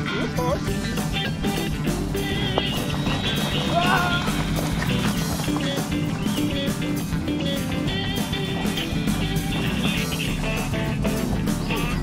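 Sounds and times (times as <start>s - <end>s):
guitar-led music: 0.0s - 12.0s.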